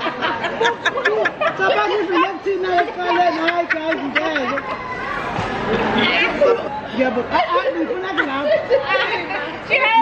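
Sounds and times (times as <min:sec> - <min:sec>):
people talking over one another: 0:00.0 - 0:10.0.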